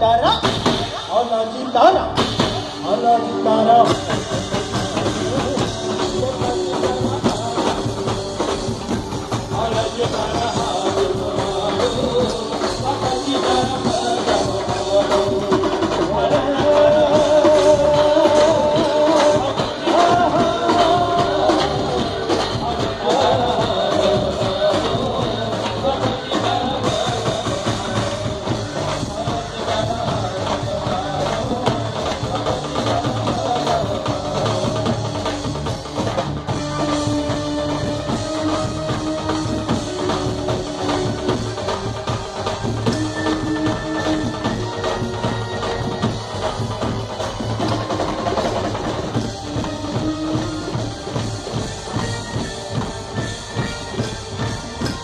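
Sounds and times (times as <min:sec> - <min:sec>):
dhol and drums beating: 0:00.0 - 0:55.0
live band playing: 0:00.0 - 0:55.0
low bass notes: 0:01.8 - 0:55.0.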